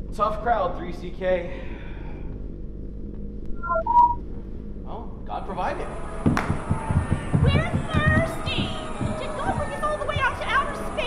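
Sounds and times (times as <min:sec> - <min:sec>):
electronic beeps: 0:03.5 - 0:04.2.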